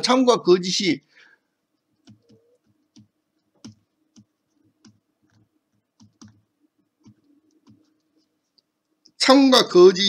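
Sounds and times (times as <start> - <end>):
stylus tapping on pen tablet: 1.8 - 6.4, 7.0 - 8.7.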